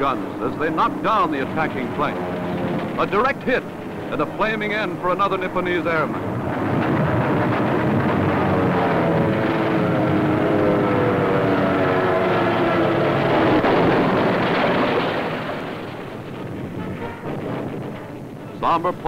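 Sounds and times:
aircraft engine drone and whine: 0:00.0 - 0:19.0.

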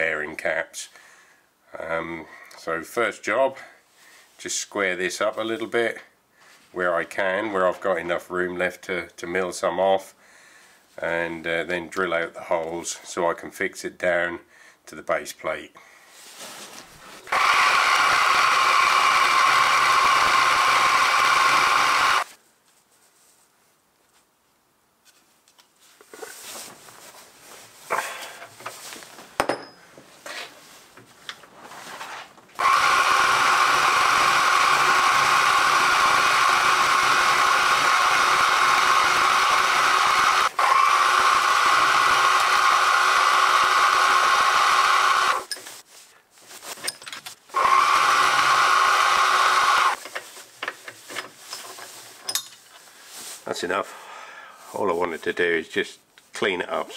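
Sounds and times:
milling machine cutting metal: 0:17.3 - 0:22.2, 0:32.6 - 0:45.5.

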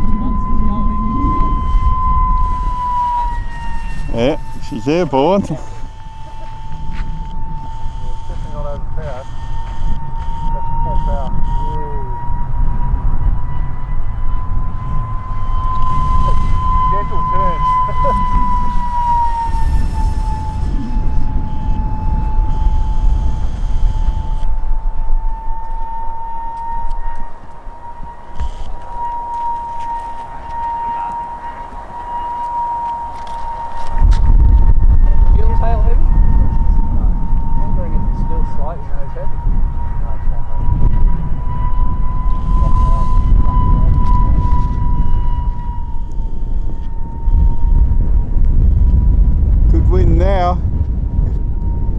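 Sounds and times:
electric ducted fan whining: 0:00.0 - 0:51.9
wind rumble on microphone: 0:00.0 - 0:51.9.

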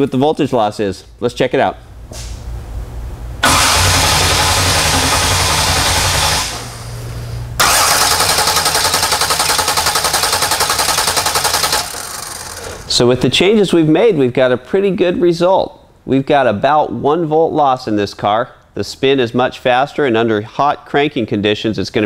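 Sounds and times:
starter motor cranking engine: 0:03.4 - 0:13.0.

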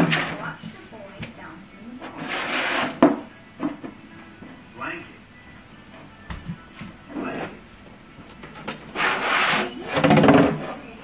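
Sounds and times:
plastic jug scraping on wooden floor: 0:00.0 - 0:00.6, 0:02.0 - 0:03.8, 0:08.9 - 0:10.8.

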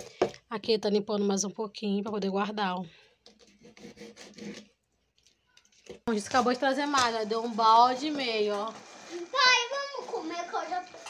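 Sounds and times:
knife scraping fish: 0:03.3 - 0:04.8.

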